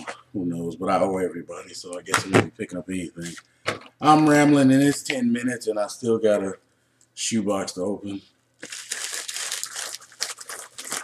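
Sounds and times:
mail packaging crinkling and tearing: 0:08.6 - 0:11.0.

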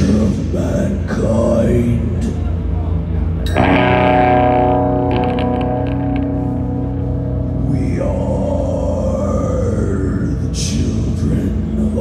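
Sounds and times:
harsh metal vocal: 0:00.0 - 0:02.4, 0:03.6 - 0:12.0
distorted guitars and drums: 0:03.4 - 0:09.5.

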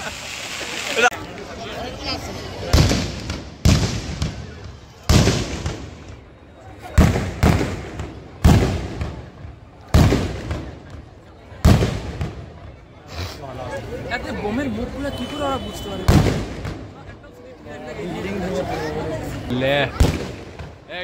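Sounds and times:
fireworks bangs: 0:02.6 - 0:12.8, 0:15.1 - 0:17.1, 0:19.9 - 0:20.9.

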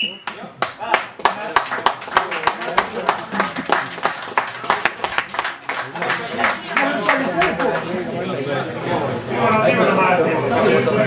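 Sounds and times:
crowd clapping in rhythm: 0:00.1 - 0:08.0.

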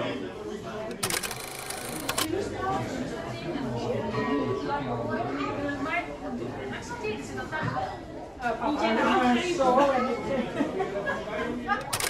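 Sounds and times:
rapid clicking rattle: 0:00.9 - 0:02.3.

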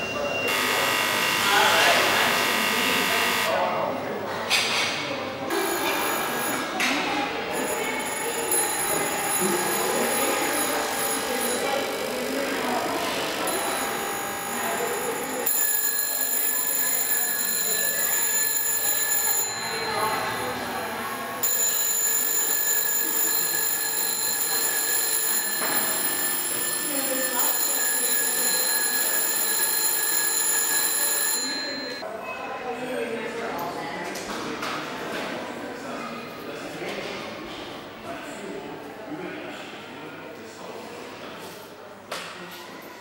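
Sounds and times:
people talking: 0:00.0 - 0:43.0
old telephone bells ringing: 0:05.5 - 0:06.8, 0:07.5 - 0:32.1.

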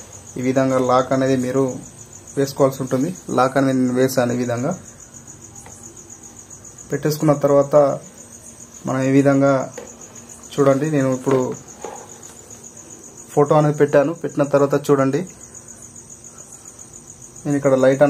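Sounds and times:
crickets chirring: 0:00.0 - 0:18.0
man talking: 0:00.4 - 0:04.8, 0:06.9 - 0:08.1, 0:08.8 - 0:09.8, 0:10.5 - 0:11.6, 0:13.3 - 0:15.4, 0:17.4 - 0:18.0.

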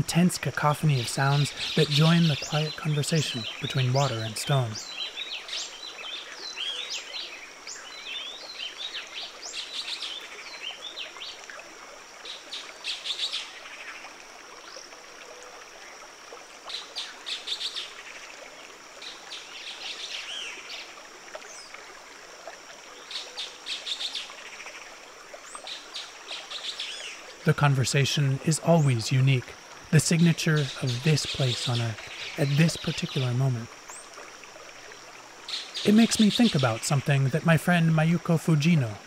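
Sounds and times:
many birds calling: 0:00.0 - 0:05.7, 0:30.0 - 0:33.6, 0:35.5 - 0:39.0
river running over stones: 0:00.0 - 0:39.0.

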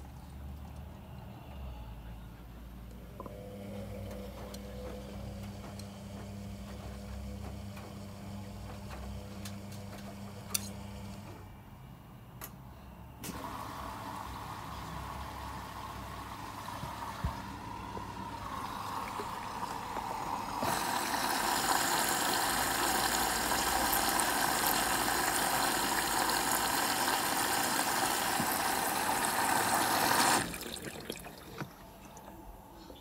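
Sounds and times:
washing machine filling with water: 0:03.2 - 0:11.1, 0:13.2 - 0:32.4.

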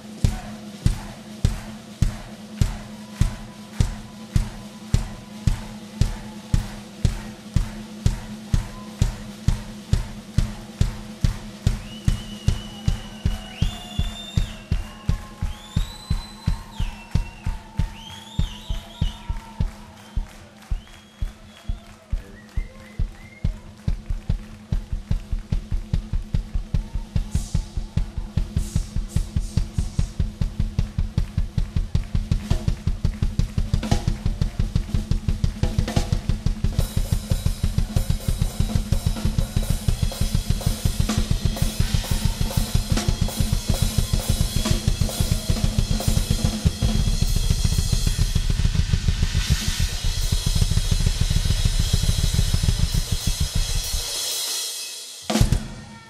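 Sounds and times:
bass drum beat: 0:00.0 - 0:54.3
snare and hi-hat: 0:00.0 - 0:55.7
crashing cymbals: 0:34.2 - 0:55.8.

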